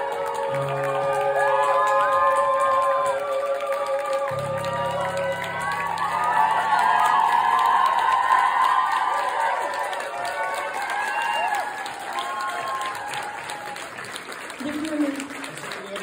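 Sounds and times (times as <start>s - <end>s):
audience clapping and cheering: 0.0s - 16.0s.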